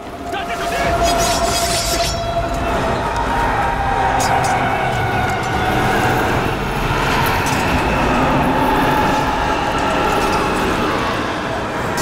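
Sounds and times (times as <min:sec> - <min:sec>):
drawn-out wailing tones: 0:00.0 - 0:12.0.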